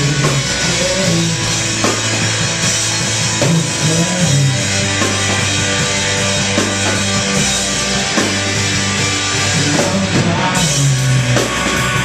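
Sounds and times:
drum kit and cymbals: 0.0 - 12.0
rock band playing: 0.0 - 12.0.

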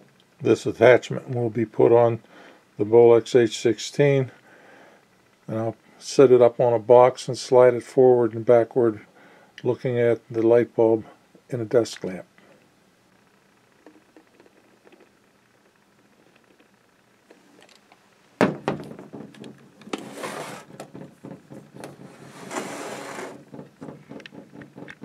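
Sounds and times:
camera scraping on wood: 19.8 - 20.8, 21.8 - 23.4.

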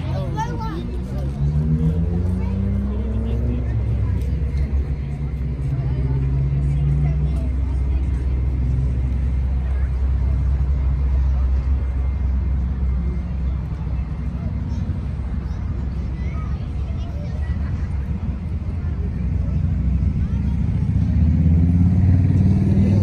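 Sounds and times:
low outdoor rumble: 0.0 - 23.0.

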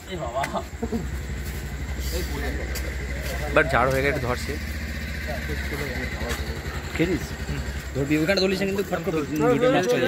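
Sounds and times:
low pulsing engine rumble: 0.2 - 10.0.

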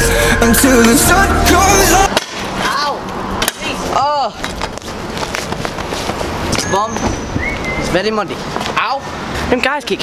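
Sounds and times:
scooter wheels rolling on concrete: 2.1 - 10.0.

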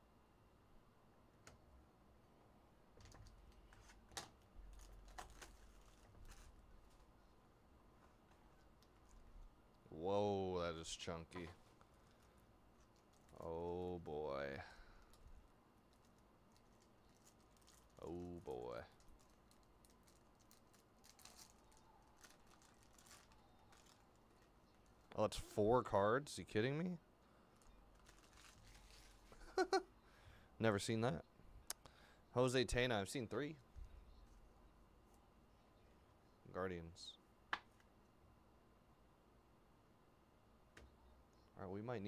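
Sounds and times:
foil wrapper crinkling: 4.7 - 7.1, 11.7 - 13.5, 15.9 - 25.1, 27.5 - 29.6.

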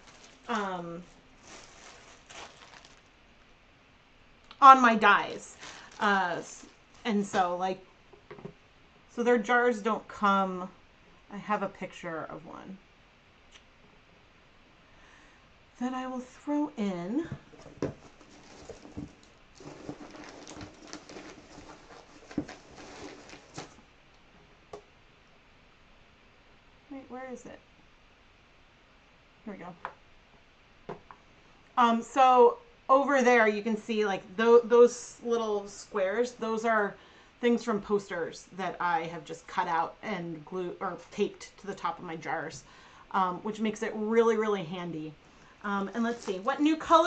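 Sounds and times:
plastic bag rustling: 0.0 - 3.2, 5.1 - 7.6, 17.4 - 23.9, 45.9 - 47.0.

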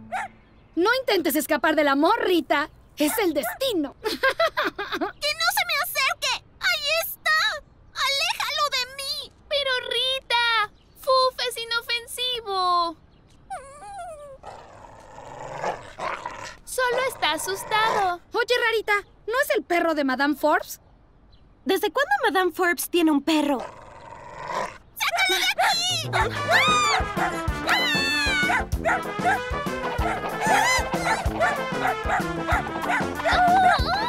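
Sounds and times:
cartoon dog whining: 13.5 - 14.5, 25.1 - 34.0
cartoon dog rough vocalising: 13.6 - 18.2, 23.5 - 34.0
upbeat music with drum beat: 26.1 - 34.0.

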